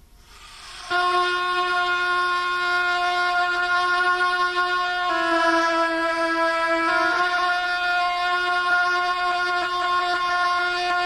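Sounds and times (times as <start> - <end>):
wind instrument horn-like note: 0.3 - 11.0.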